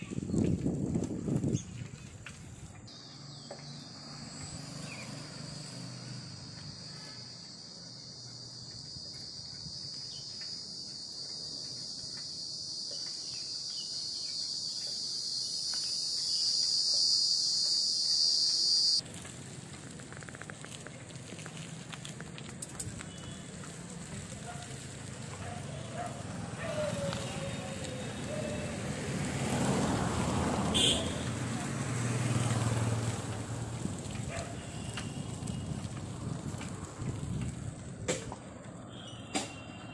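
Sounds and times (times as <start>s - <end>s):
outdoor noise: 0.0s - 39.9s
high-pitched insect drone: 3.9s - 19.0s.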